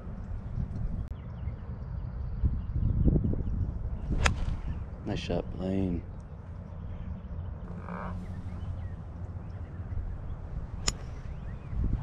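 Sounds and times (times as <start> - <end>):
low steady rumble: 0.0 - 12.0
golf club striking ball: 10.8 - 11.4.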